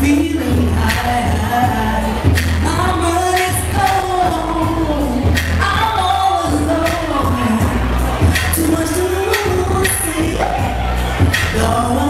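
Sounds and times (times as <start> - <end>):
backing music with deep bass: 0.0 - 12.0
woman singing into microphone: 0.0 - 12.0.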